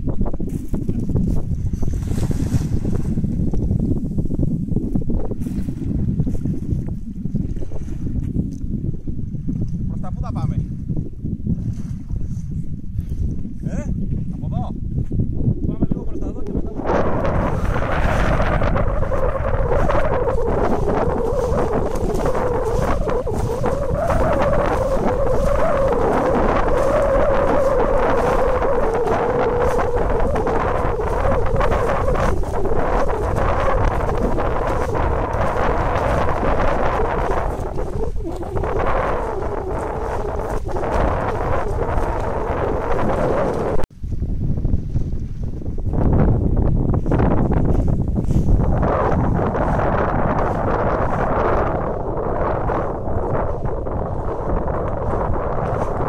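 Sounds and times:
wind buffeting microphone: 0.0s - 56.0s
wavering drone: 16.8s - 43.8s.

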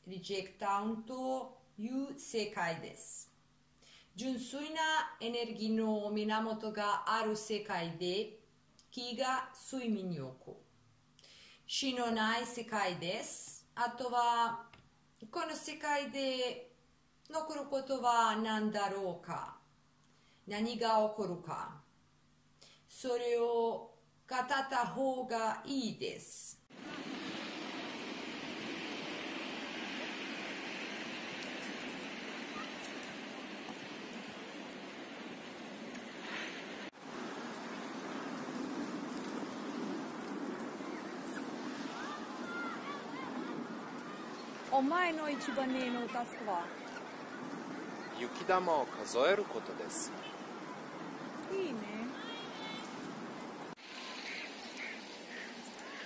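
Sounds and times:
faint outdoor hiss: 0.0s - 56.0s
bird calling: 31.6s - 34.7s, 37.7s - 56.0s.

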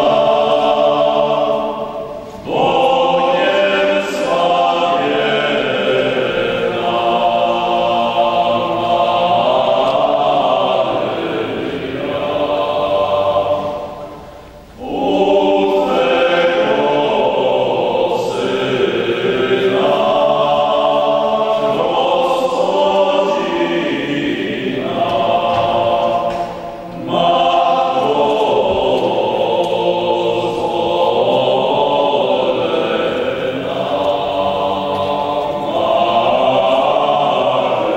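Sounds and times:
male vocal ensemble singing a cappella: 0.0s - 37.9s
singers breathing: 2.0s - 2.5s.

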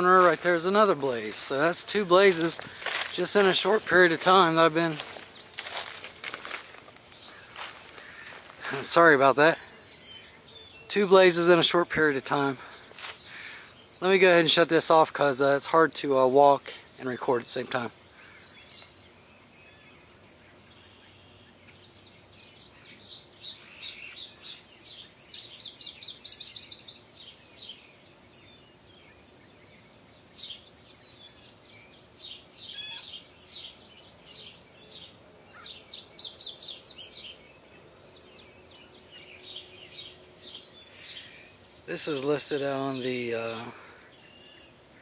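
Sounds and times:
birds chirping: 0.0s - 45.0s
high insect drone: 0.0s - 45.0s.

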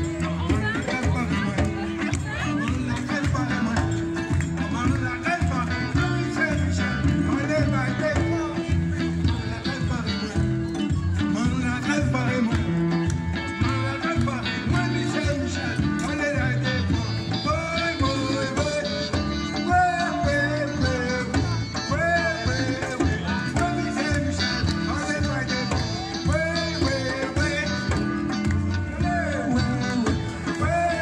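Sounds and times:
bass line: 0.0s - 31.0s
electric guitar: 0.0s - 31.0s
live band playing upbeat song: 0.0s - 31.0s
percussion beat: 0.0s - 31.0s.

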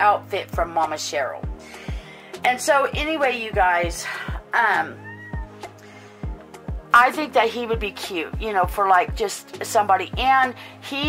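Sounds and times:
background music with steady beat: 0.0s - 11.0s
cat meowing: 4.7s - 5.7s.

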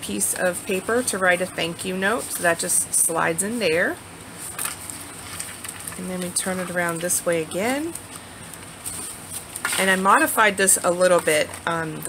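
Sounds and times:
paper rustling and sliding: 4.3s - 6.0s, 8.8s - 9.8s
paper crinkling: 4.3s - 10.4s.

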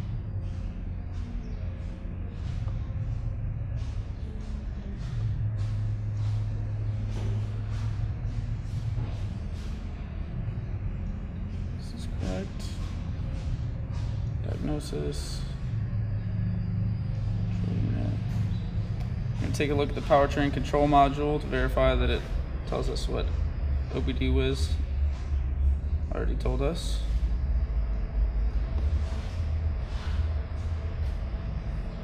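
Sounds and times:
low machine hum: 0.0s - 32.0s
steady low rumble: 0.0s - 32.0s.

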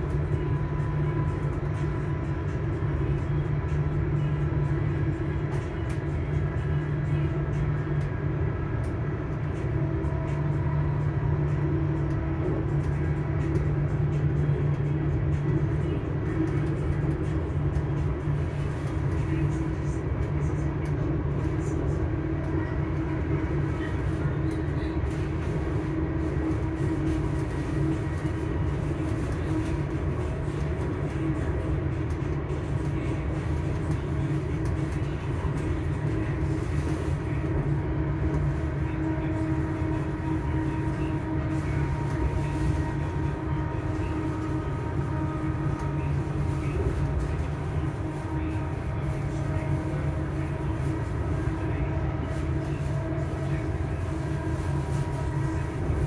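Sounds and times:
train wheels rumbling on rails: 0.0s - 56.0s
train traction motor whine: 33.9s - 56.0s.

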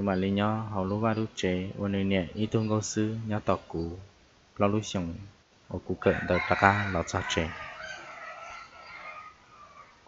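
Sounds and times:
person speaking: 0.0s - 7.7s
rooster crowing: 6.0s - 10.0s.

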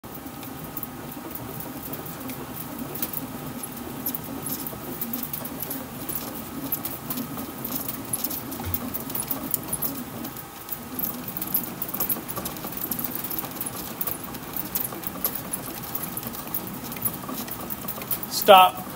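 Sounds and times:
bat crackling in rolling machine: 0.1s - 18.9s
low steady machine hum: 0.1s - 18.9s.

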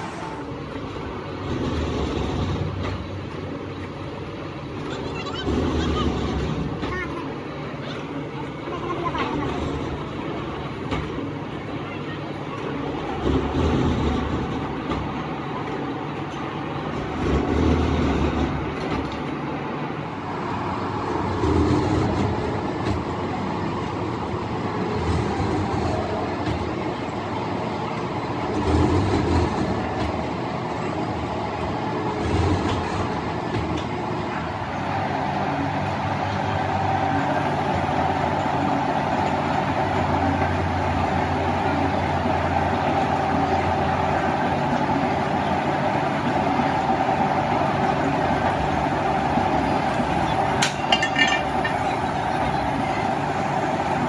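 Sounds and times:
heavy machine strokes: 0.0s - 3.4s, 4.7s - 7.0s.

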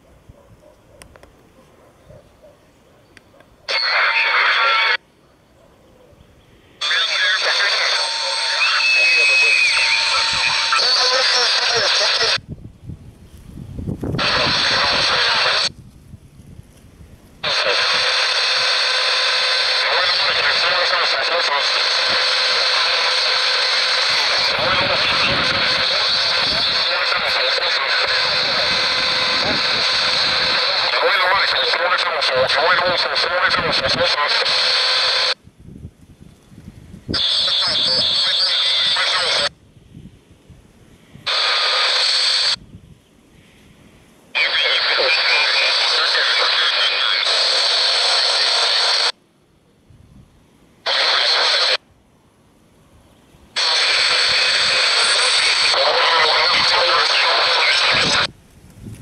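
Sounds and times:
radio static and hiss: 0.0s - 12.5s, 14.0s - 15.8s, 17.2s - 35.4s, 37.1s - 39.6s, 41.0s - 42.6s, 43.3s - 49.6s, 50.8s - 51.9s, 53.5s - 58.4s
broadcast voice over radio speaker: 3.6s - 5.0s, 6.8s - 12.4s, 14.2s - 15.7s, 17.4s - 35.4s, 37.2s - 39.5s, 41.3s - 42.6s, 44.3s - 49.2s, 50.8s - 51.8s, 53.6s - 58.3s.

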